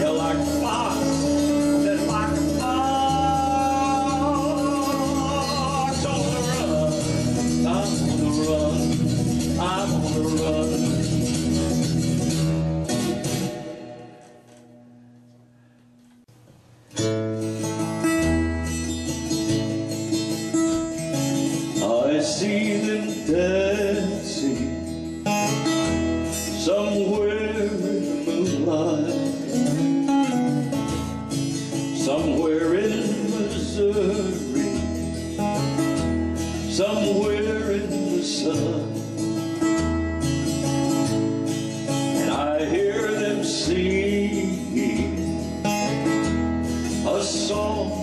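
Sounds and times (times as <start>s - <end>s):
man singing: 0.0s - 11.8s, 21.2s - 25.3s, 26.3s - 30.7s, 31.7s - 39.8s, 40.8s - 48.0s
acoustic guitar strumming: 0.0s - 48.0s.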